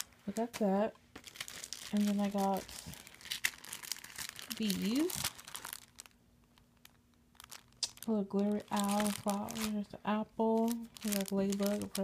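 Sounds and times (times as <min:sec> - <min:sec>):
faint steady hum: 0:00.0 - 0:12.0
plastic sleeve crinkling: 0:00.0 - 0:12.0.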